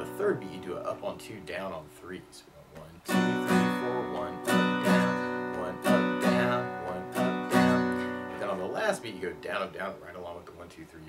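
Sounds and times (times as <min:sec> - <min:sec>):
acoustic guitar strumming: 0:00.0 - 0:02.3, 0:02.9 - 0:10.4.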